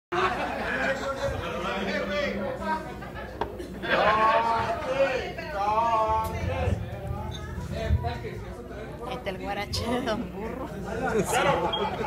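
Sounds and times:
indistinct chatter of people: 0.1 - 12.0.

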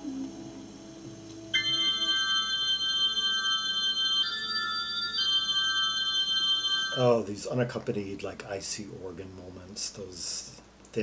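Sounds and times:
organ playing sustained chords: 0.0 - 7.2.

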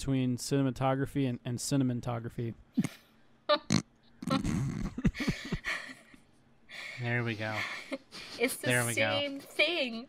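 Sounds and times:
person making vocal noises: 3.6 - 5.2.

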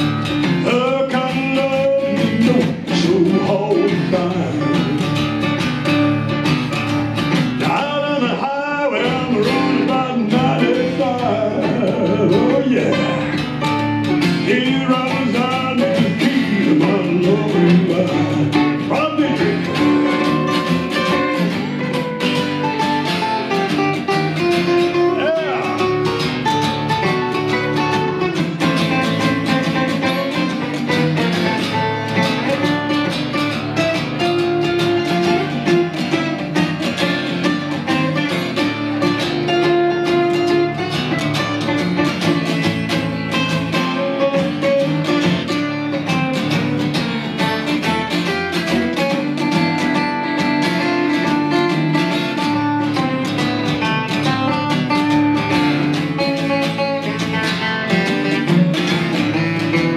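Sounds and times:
acoustic guitars strumming: 0.0 - 59.9.

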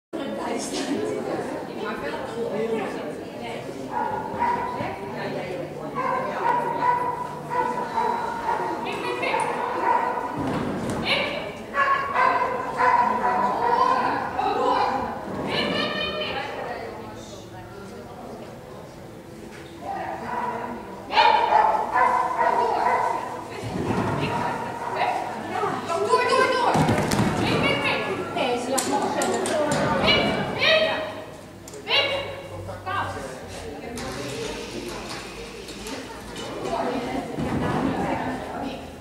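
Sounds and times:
dog barking high-pitched: 11.8 - 14.0, 20.3 - 23.2.

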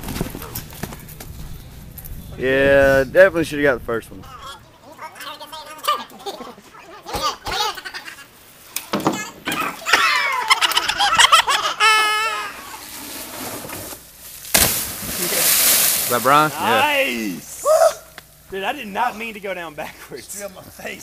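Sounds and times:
men yelling and laughing: 4.2 - 8.4, 9.4 - 12.8, 16.1 - 21.0.

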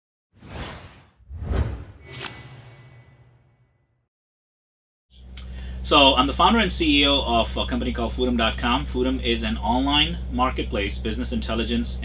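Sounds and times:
whoosh sound effect: 0.4 - 3.8.

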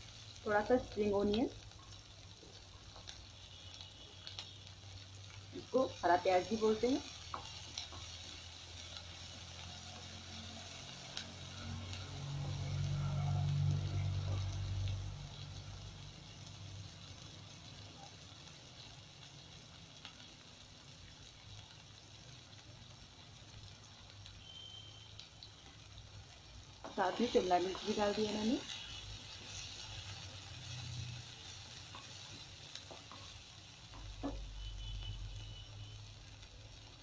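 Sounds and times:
vegetables sizzling in hot oil: 0.0 - 37.0
spatula stirring: 26.8 - 34.9.

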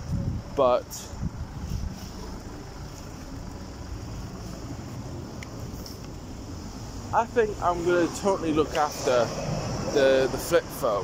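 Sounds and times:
wind buffeting microphone: 0.0 - 2.8.

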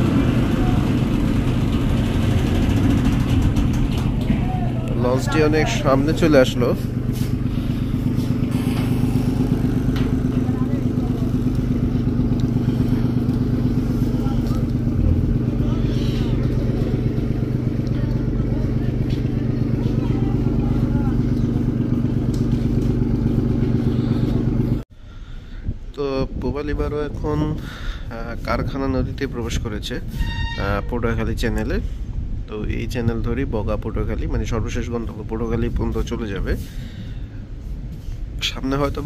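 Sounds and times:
boat diesel engine droning: 0.0 - 24.8.

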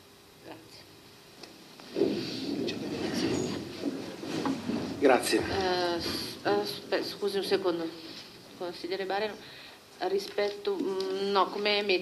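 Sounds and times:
shuffling and rustling: 1.8 - 8.6
chairs scraping on tiled floor: 1.9 - 6.8.

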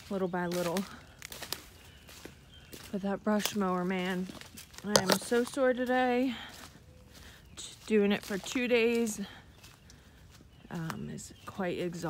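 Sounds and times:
footsteps on dry leaves: 0.0 - 12.0.

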